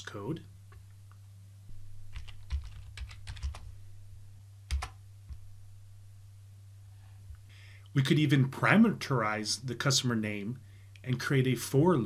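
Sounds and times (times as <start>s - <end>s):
steady low hum: 0.0s - 12.0s
typing on computer keyboard: 2.2s - 3.7s, 4.7s - 5.0s.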